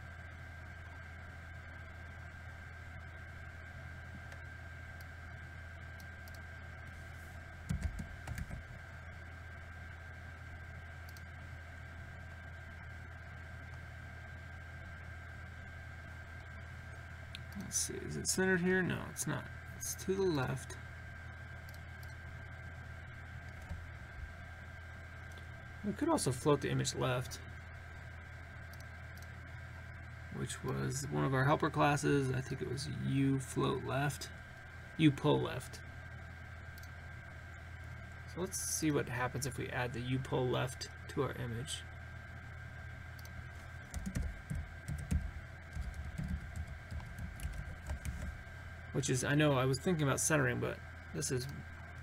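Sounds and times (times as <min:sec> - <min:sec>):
low electrical hum: 0:00.0 - 0:52.0
computer mouse clicks: 0:06.0 - 0:06.4, 0:11.0 - 0:11.3, 0:36.7 - 0:37.0, 0:43.2 - 0:48.4
thin high whine: 0:08.7 - 0:44.6.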